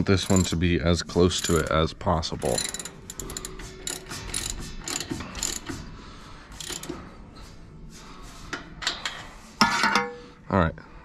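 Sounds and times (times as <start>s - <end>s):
metallic clicks and rattles: 0.0s - 5.9s, 6.5s - 7.1s.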